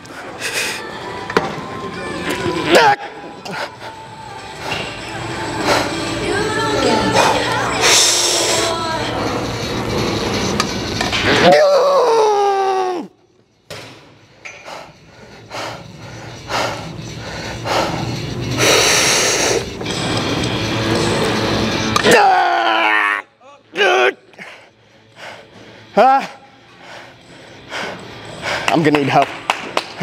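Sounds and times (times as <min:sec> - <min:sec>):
music: 0:00.0 - 0:11.4, 0:14.7 - 0:30.0
man breathing hard: 0:14.5 - 0:19.7, 0:24.3 - 0:26.0, 0:26.6 - 0:28.8.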